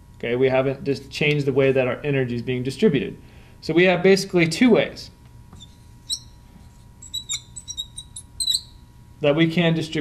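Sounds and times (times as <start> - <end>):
marker squeaking on glass: 5.6 - 8.9.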